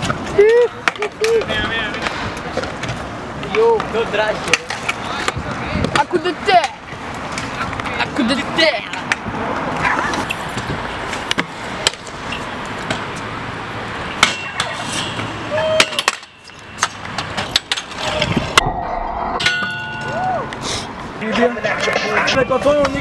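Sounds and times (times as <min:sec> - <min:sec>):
scooter wheels rolling on concrete: 0:00.0 - 0:18.6, 0:20.0 - 0:23.0
scooter deck clacking on ground: 0:14.2 - 0:18.4.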